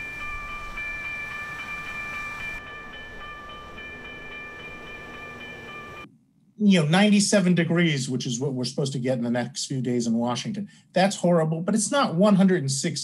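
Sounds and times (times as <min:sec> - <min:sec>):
high steady whine: 0:00.0 - 0:06.1.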